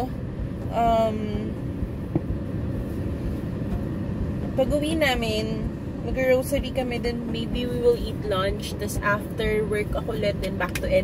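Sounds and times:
car idling from inside cabin: 0.0s - 11.0s.

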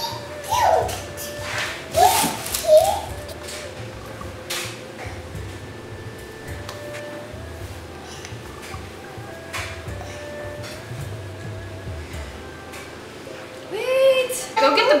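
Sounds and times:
toddler babbling: 0.0s - 1.0s, 1.9s - 3.3s.

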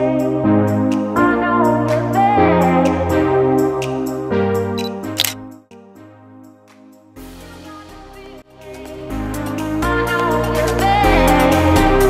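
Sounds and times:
background music with held notes: 0.0s - 12.0s
camera shutter click: 4.8s - 5.4s.

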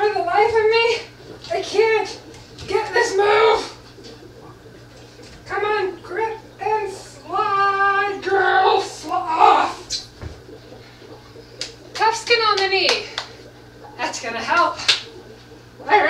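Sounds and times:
woman vocalizing wordlessly: 5.5s - 10.1s.

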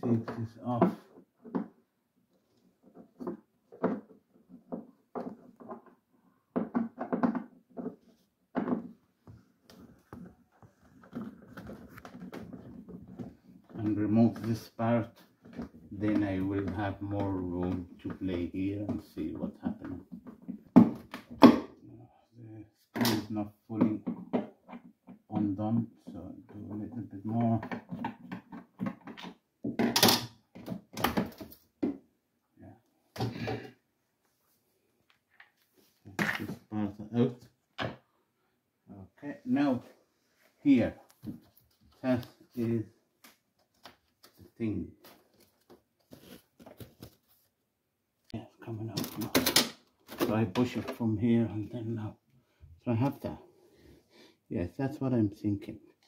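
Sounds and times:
man talking: 0.0s - 1.0s, 13.7s - 15.3s, 15.9s - 20.1s, 21.8s - 24.2s, 25.3s - 27.7s, 36.0s - 37.5s, 38.9s - 39.9s, 40.6s - 41.1s, 42.0s - 43.0s, 44.4s - 45.1s, 48.3s - 52.2s, 52.8s - 53.5s, 54.5s - 55.9s
plastic parts clicking and knocking: 2.8s - 9.0s, 9.7s - 18.2s, 18.8s - 21.8s, 23.8s - 32.1s, 48.9s - 51.0s.

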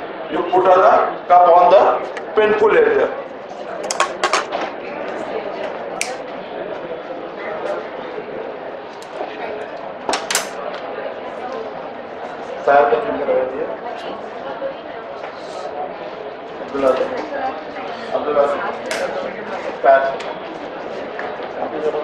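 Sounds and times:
low chatter of people: 0.0s - 22.0s.

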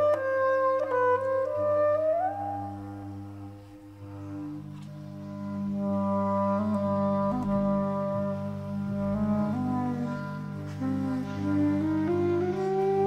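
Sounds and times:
clarinet ensemble music: 0.0s - 13.0s.

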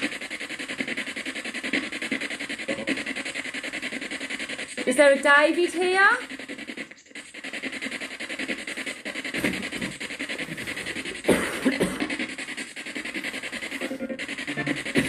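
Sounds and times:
choppy radio static: 0.0s - 15.0s
snatches of broadcast sound: 0.0s - 15.0s.

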